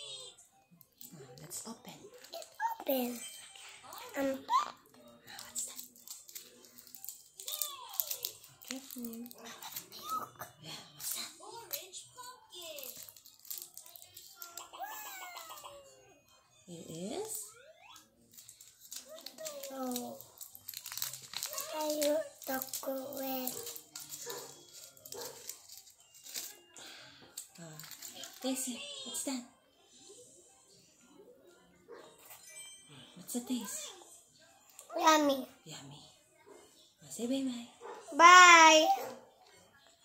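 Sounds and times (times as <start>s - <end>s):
faint murmured speech: 0.0s - 40.0s
foil wrapper crinkling: 5.3s - 10.3s, 12.6s - 15.5s, 18.3s - 26.6s, 27.6s - 28.6s.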